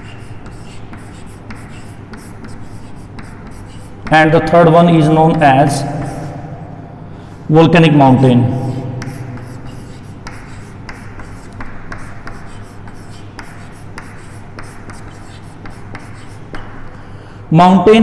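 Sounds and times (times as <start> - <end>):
chalk scratching on chalkboard: 0.0 - 4.2, 5.8 - 6.4, 8.6 - 16.8
steady low hum: 0.0 - 18.0.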